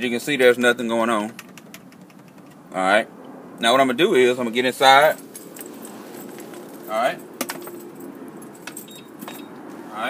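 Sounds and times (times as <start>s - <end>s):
keys jingling: 5.2s - 9.6s.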